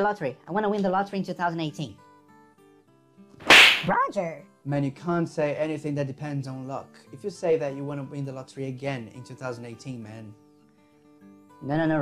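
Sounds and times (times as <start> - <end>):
whip-crack slap effect: 3.4 - 3.9
faint guitar music: 3.9 - 12.0.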